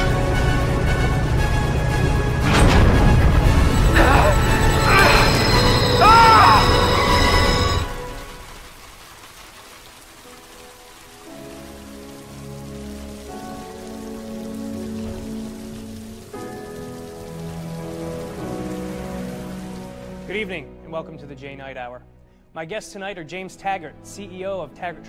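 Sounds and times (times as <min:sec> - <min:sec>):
sustained music chords: 0:00.0 - 0:08.4
rain falling: 0:00.0 - 0:20.7.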